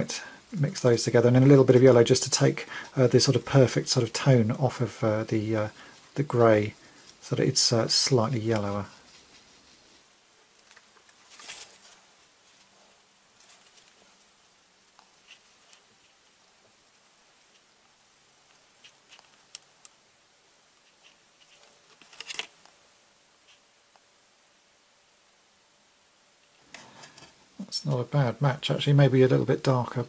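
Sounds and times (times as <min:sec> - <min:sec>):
paper rustling: 0:08.5 - 0:14.3, 0:20.8 - 0:22.6
paintbrush scratching on paper: 0:08.9 - 0:10.1.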